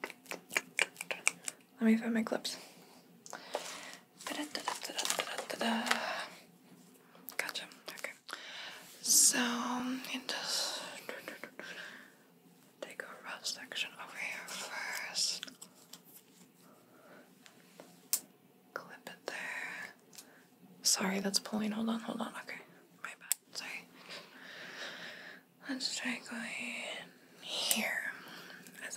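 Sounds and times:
close-microphone whispering: 0:00.0 - 0:01.6, 0:04.2 - 0:06.4, 0:07.4 - 0:08.3, 0:09.0 - 0:11.7, 0:12.8 - 0:15.8, 0:21.9 - 0:23.9, 0:25.6 - 0:28.9.

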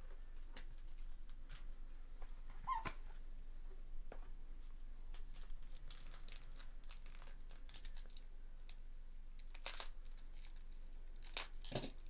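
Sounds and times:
short squeak: 0:02.6 - 0:03.0
foil packs crinkling: 0:05.3 - 0:08.2, 0:09.4 - 0:12.0.

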